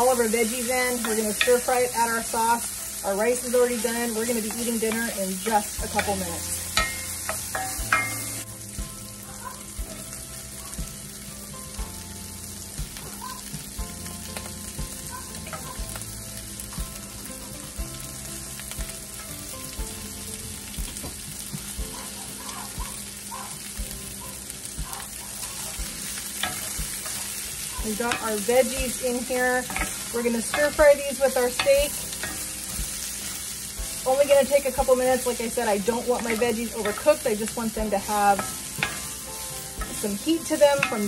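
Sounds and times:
faint background music: 0.0s - 41.0s
meat and vegetables sizzling in oil: 0.0s - 41.0s.

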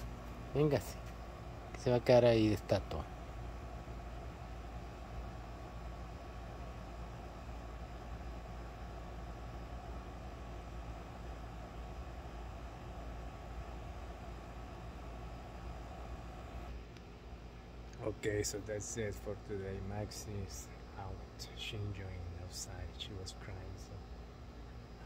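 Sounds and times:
faint hum: 0.0s - 25.0s
low outdoor rumble: 0.0s - 25.0s.

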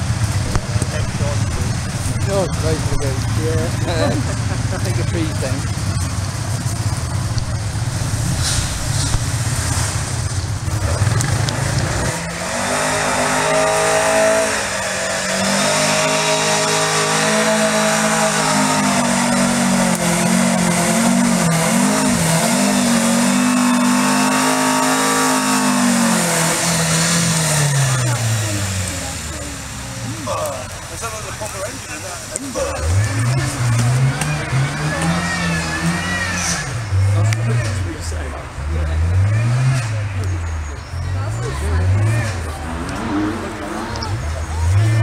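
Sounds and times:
low rumble: 0.0s - 12.2s
car engine under load: 0.0s - 45.0s.

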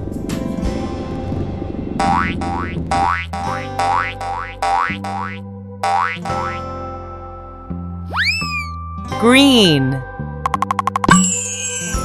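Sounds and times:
rising boing-like pops: 2.0s - 6.6s
children's background music: 3.4s - 12.0s.

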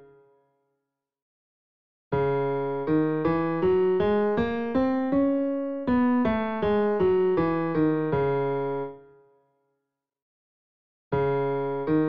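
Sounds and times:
piano playing a scale: 2.2s - 9.0s, 11.2s - 12.0s.

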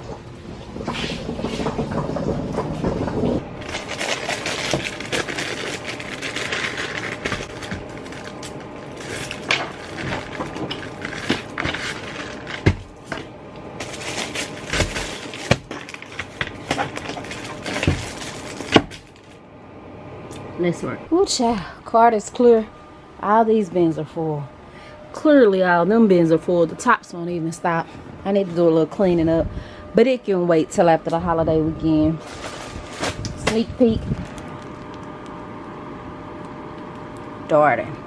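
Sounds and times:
packaging rustling and clattering: 3.6s - 19.4s, 32.2s - 35.1s.

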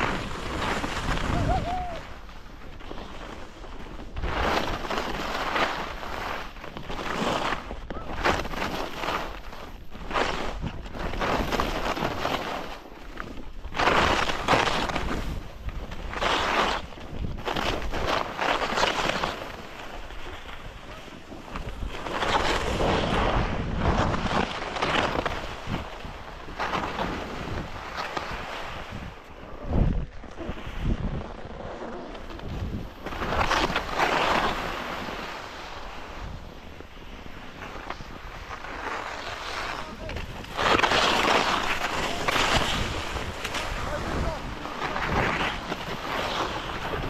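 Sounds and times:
skis scraping over hard snow: 0.0s - 47.0s
wind noise on microphone: 0.0s - 47.0s.

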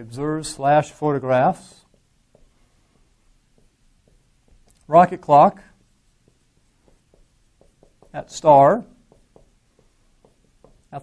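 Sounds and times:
marker tapping on whiteboard: 1.8s - 2.6s, 3.4s - 5.3s, 6.2s - 11.0s.

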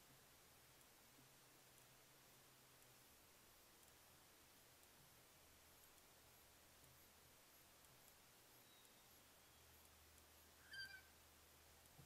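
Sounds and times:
faint high animal call: 10.6s - 11.2s.

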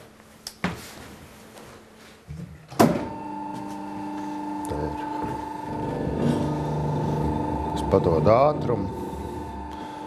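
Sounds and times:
steady hum: 2.8s - 10.0s.

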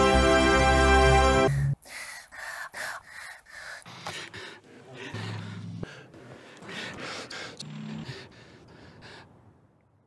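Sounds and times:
breathy inhalations: 1.5s - 9.6s.

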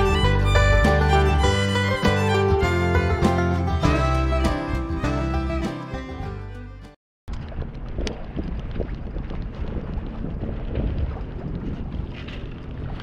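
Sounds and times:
wind buffeting microphone: 7.3s - 13.0s.

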